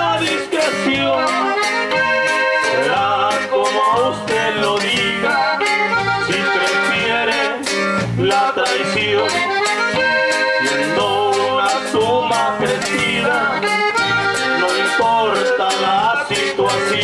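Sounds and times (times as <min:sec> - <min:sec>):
bass: 0:00.0 - 0:17.0
button accordion melody: 0:00.0 - 0:17.0
steady drum beat: 0:00.0 - 0:17.0
strummed guitar: 0:00.0 - 0:17.0.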